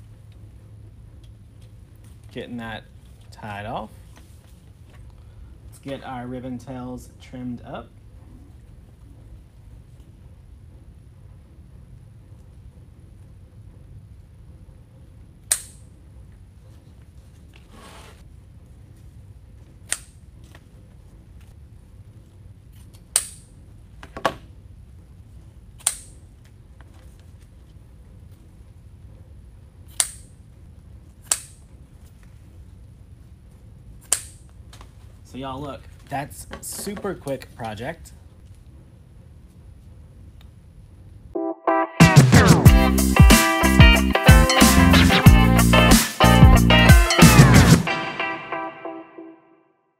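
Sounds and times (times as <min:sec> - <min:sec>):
faint room hum: 0:00.0 - 0:41.4.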